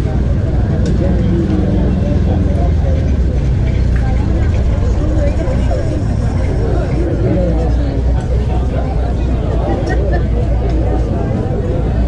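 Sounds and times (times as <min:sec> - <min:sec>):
indistinct voices: 0:00.0 - 0:12.0
loud low rumble: 0:00.0 - 0:12.0.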